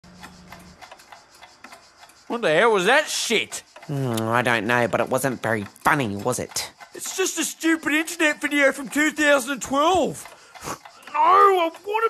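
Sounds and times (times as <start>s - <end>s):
faint irregular clicks: 0.1s - 12.0s.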